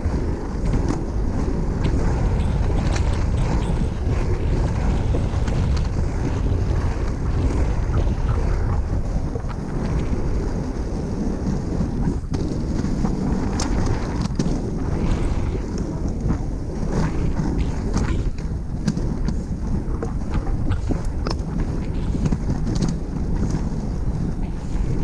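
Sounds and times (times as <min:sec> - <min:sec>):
skate wheels rumbling on asphalt: 0:00.0 - 0:25.0
wind buffeting microphone: 0:00.0 - 0:25.0.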